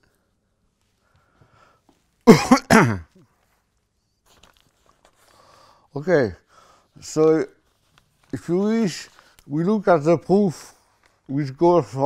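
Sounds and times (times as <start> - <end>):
man coughing: 2.2 - 3.3.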